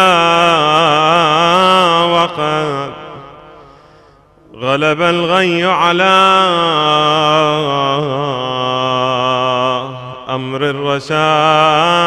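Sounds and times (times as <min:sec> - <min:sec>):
man chanting unaccompanied: 0:00.0 - 0:03.6, 0:04.5 - 0:12.0.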